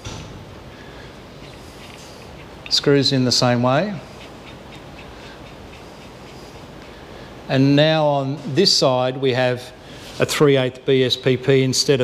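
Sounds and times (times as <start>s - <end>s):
faint even ticking: 0.9s - 7.4s.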